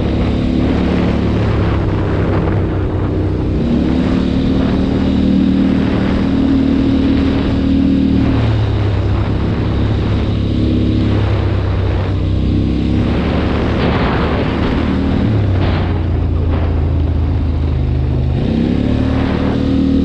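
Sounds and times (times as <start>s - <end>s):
quad bike engine running: 0.0s - 20.0s.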